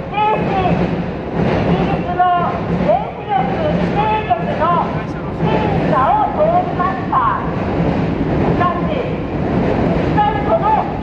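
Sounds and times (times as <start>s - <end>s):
low rumble of city noise: 0.0s - 11.0s
raised voice speaking: 4.7s - 6.1s.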